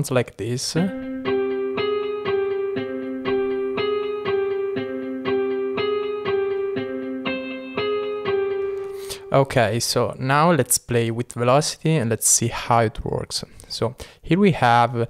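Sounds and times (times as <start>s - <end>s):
synthesizer melody of short notes: 0.8s - 9.7s.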